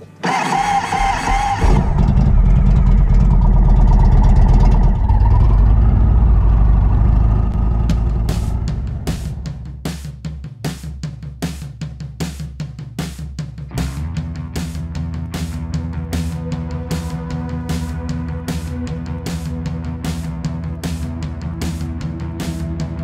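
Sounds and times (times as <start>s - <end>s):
motorcycle engine pulling away: 0.4s - 9.6s
rock music with drum beat: 7.6s - 23.0s.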